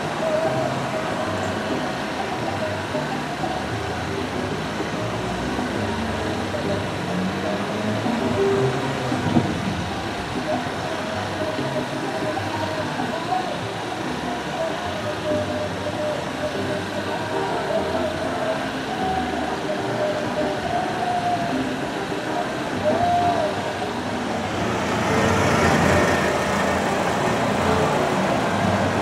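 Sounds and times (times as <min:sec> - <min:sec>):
faint voices: 0:00.0 - 0:29.0
traffic noise: 0:00.0 - 0:29.0
vehicle passing close: 0:24.0 - 0:29.0.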